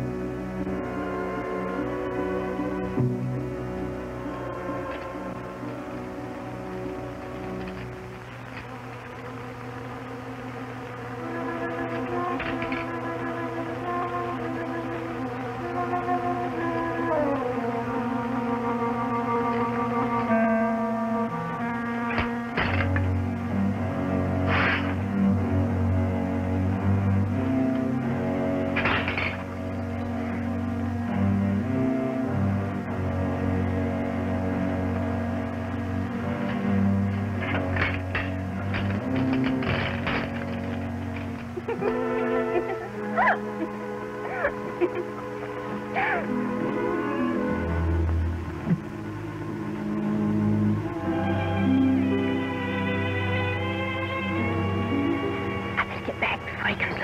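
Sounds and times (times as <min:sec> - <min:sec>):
suspenseful film score music: 0:00.0 - 0:57.0.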